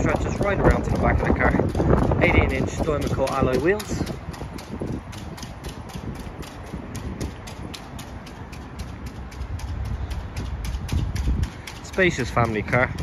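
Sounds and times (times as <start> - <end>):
footsteps on wet tarmac: 0.0 - 13.0.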